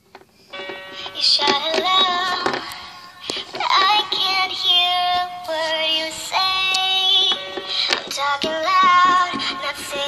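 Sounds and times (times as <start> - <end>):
high singing voice: 0.7 - 10.0.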